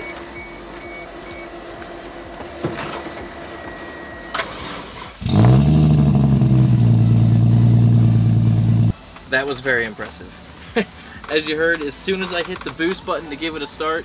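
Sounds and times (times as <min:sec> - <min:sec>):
car engine starting and idling: 0:00.0 - 0:09.0.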